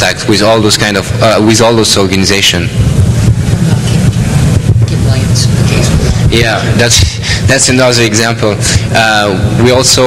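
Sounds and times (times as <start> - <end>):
loud low rumble: 0.0 - 10.0.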